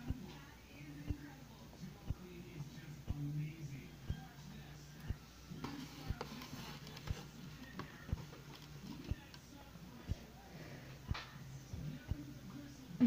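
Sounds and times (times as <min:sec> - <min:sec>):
faint background voices: 0:00.0 - 0:13.0
music: 0:01.1 - 0:13.0.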